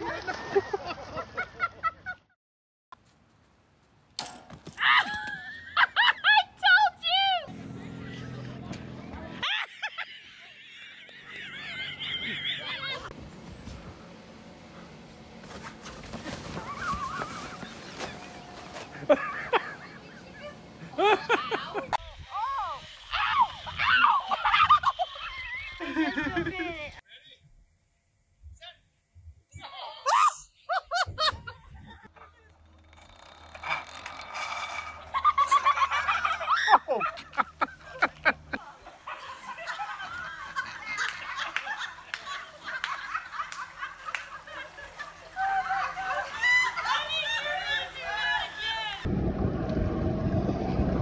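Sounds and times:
high-pitched cackling laughter: 0:04.8 - 0:06.6, 0:09.4 - 0:13.1, 0:19.0 - 0:26.9, 0:30.0 - 0:32.5, 0:34.4 - 0:48.2
woman shrieking with laughter: 0:04.8 - 0:07.4, 0:09.4 - 0:10.6, 0:21.0 - 0:26.9, 0:30.0 - 0:31.5, 0:35.8 - 0:38.1, 0:45.2 - 0:48.9.

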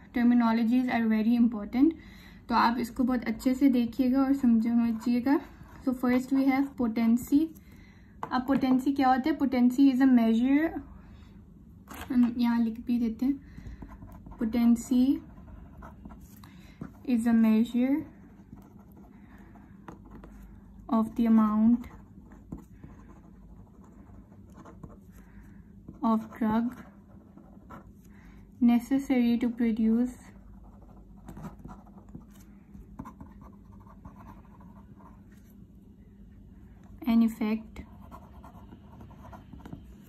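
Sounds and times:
pen scratching on paper: 0:13.8 - 0:25.2, 0:25.9 - 0:28.1, 0:30.4 - 0:32.4, 0:33.0 - 0:35.5, 0:37.8 - 0:40.0
felt-tip pen scratching paper: 0:37.8 - 0:40.0.

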